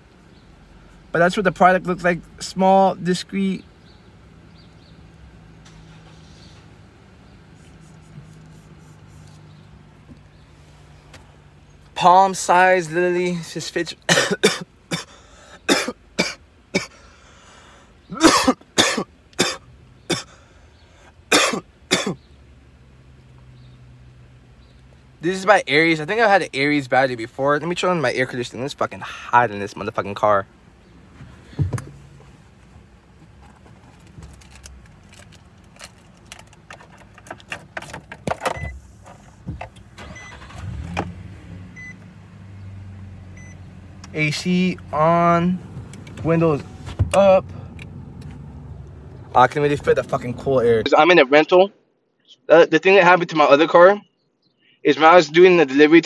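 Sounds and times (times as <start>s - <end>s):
air conditioning hum: 0.0s - 23.3s
man coughing harshly: 14.1s - 17.0s, 18.1s - 20.4s, 21.3s - 22.2s
car controls clicking and knocking: 31.6s - 32.0s, 35.8s - 39.9s.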